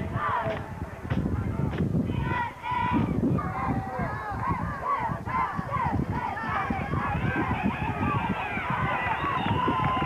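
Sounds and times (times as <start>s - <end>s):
crowd yelling and cheering: 2.2s - 10.0s.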